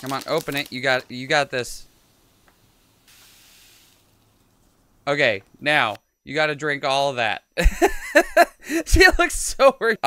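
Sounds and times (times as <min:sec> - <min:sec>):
powder pouring hiss: 0:00.0 - 0:04.9.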